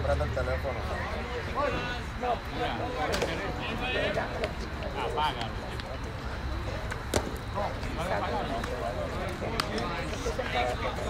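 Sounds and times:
murmur of voices: 0.0 - 11.0
baseball popping into mitt: 6.9 - 7.4.

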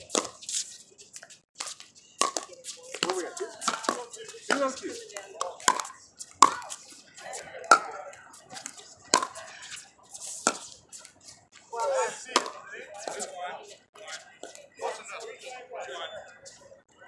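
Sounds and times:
paddles hitting plastic ball: 1.6 - 6.8, 7.7 - 9.4, 12.3 - 13.2
player's voice: 2.5 - 9.7, 11.7 - 16.5.

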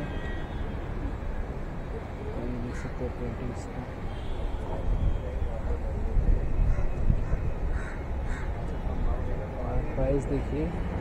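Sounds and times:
crows cawing: 2.7 - 3.0, 7.7 - 8.6.

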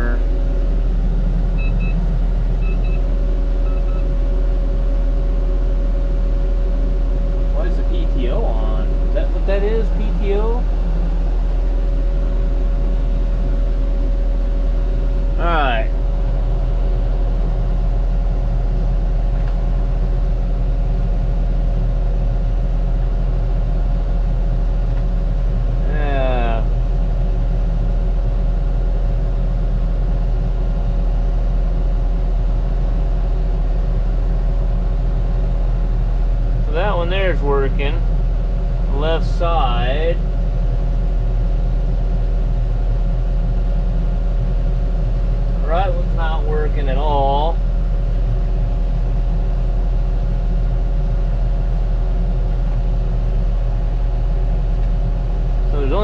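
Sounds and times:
tractor diesel engine droning: 0.0 - 10.6, 35.8 - 40.3, 51.9 - 56.0.

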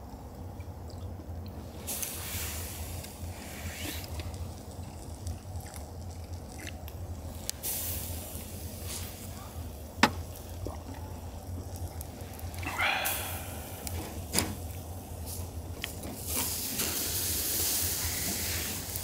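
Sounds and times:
clams sizzling on a grill: 1.6 - 19.0.

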